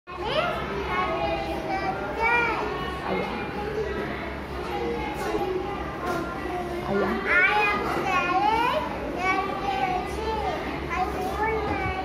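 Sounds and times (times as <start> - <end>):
child talking: 0.1 - 3.0, 4.6 - 12.0
children chattering: 0.1 - 12.0.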